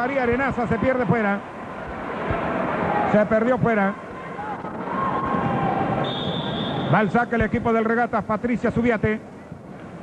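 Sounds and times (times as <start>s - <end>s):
arena crowd noise: 0.0s - 10.0s
referee's whistle blast: 6.0s - 7.2s.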